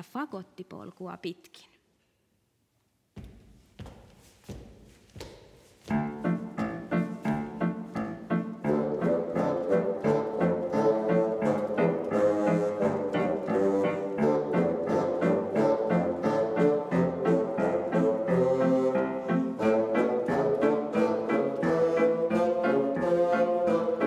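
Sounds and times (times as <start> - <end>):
bassoons playing rhythmic tune: 5.9 - 24.0.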